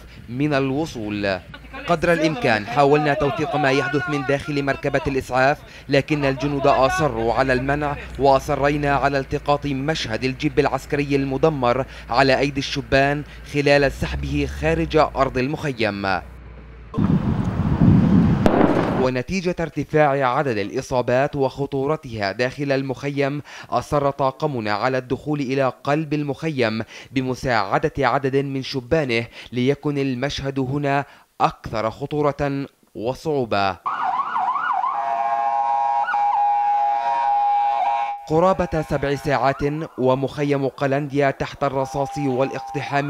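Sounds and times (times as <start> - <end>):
microphone rumbling and crackling: 16.9 - 19.5
sharp crack: 18.4 - 19.3
ambulance siren: 33.8 - 41.1, 41.7 - 43.0.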